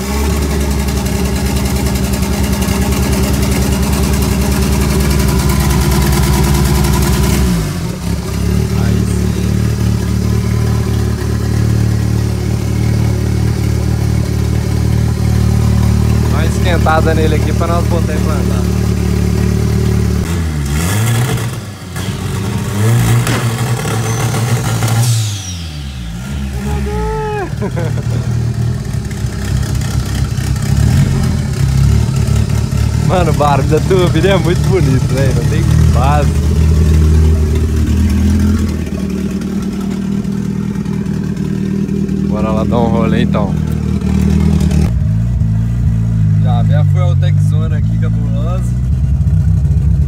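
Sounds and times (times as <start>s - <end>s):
car engine idling and revving: 0.0s - 50.0s
turbo whistle: 23.9s - 27.4s.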